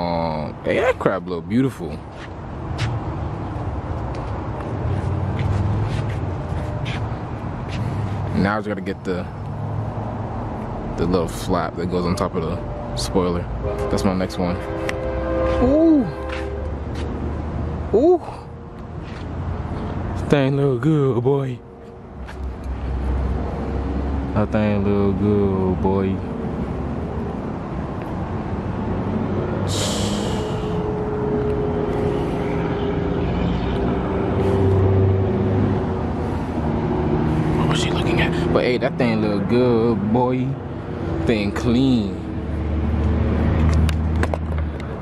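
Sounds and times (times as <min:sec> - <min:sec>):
vehicle engine rumbling: 0:00.0 - 0:45.0.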